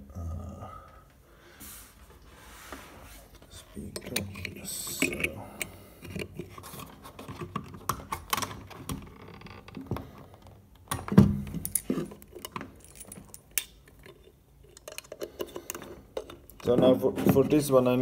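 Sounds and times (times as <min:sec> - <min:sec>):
metal plugs clicking and rattling: 0:03.8 - 0:09.1, 0:10.8 - 0:16.9.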